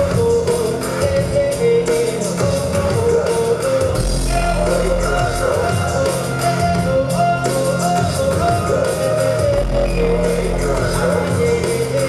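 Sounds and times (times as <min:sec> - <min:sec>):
electronic rock music: 0:00.0 - 0:12.0
man singing into microphone: 0:00.0 - 0:12.0
deep bass note: 0:04.0 - 0:05.8.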